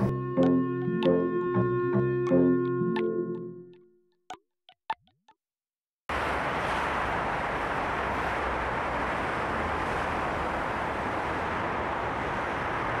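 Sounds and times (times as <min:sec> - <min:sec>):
low traffic rumble: 0:06.1 - 0:13.0
passing cars: 0:06.1 - 0:13.0.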